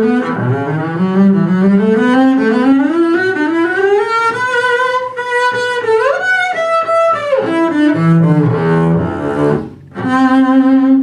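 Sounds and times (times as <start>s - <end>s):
bowed double bass: 0.0s - 11.0s.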